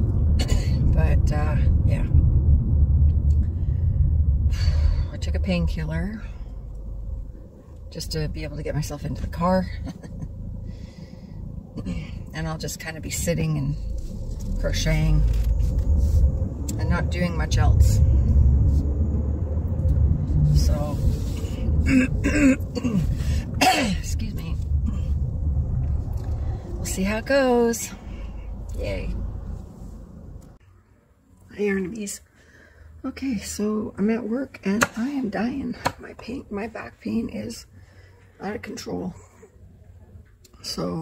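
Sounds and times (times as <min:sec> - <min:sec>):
car engine rumble inside cabin: 0:00.0 - 0:30.6
person breathing: 0:10.6 - 0:12.2, 0:27.9 - 0:28.6, 0:32.3 - 0:33.0
woman clearing her throat: 0:21.8 - 0:24.0.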